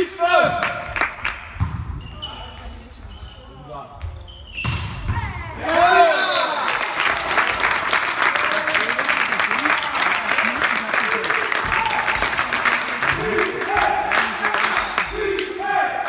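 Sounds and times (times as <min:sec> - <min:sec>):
crowd applauding: 0:06.0 - 0:15.5.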